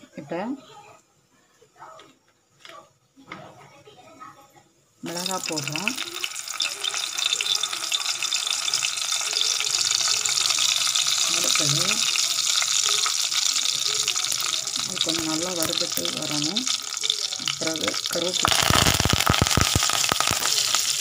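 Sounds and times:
oil sizzling in a pan: 5.0s - 21.0s.

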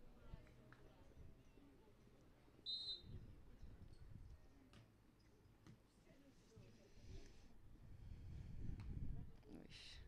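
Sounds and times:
referee's whistle blast: 2.7s - 3.1s.

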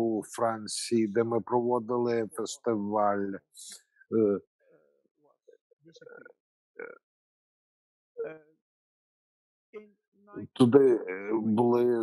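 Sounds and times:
man making short vocal sounds: 6.1s - 7.0s, 10.4s - 12.0s.

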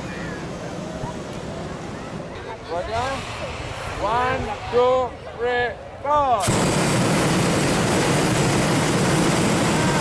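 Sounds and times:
propane burner firing: 6.4s - 10.0s.

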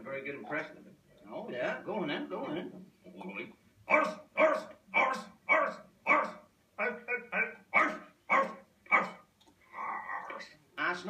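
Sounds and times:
man shouting: 3.8s - 9.2s.

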